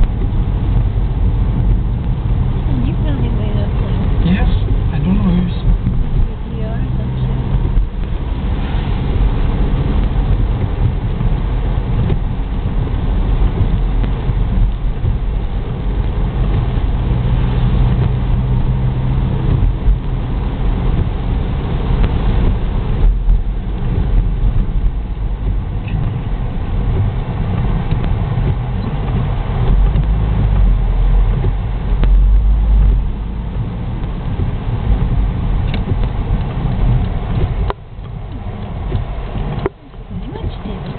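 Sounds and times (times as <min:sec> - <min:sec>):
car engine rumble: 0:00.0 - 0:40.9
tyre noise on wet road: 0:00.0 - 0:40.9.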